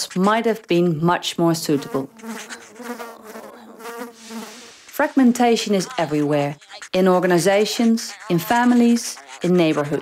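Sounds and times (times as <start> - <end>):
fly buzzing: 1.6 - 7.4.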